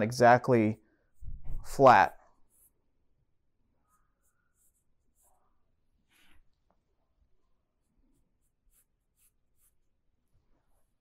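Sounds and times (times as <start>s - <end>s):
pencil scratching on paper: 0.6s - 3.0s, 3.8s - 6.5s, 7.6s - 11.0s.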